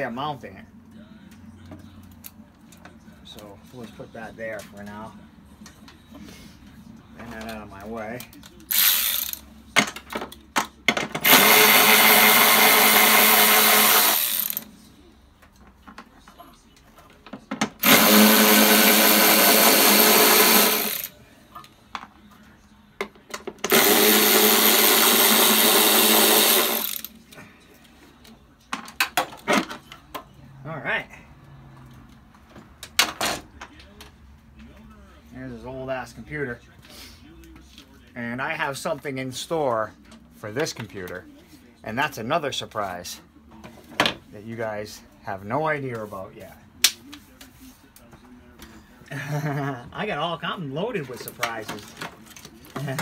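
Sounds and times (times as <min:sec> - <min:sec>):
power tool driving bolts: 0:08.7 - 0:10.0, 0:11.0 - 0:14.6, 0:17.7 - 0:21.1, 0:23.6 - 0:27.1.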